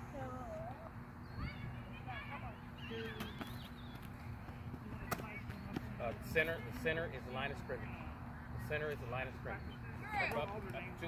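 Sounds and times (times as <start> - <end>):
distant children's voices: 0.0 - 3.6.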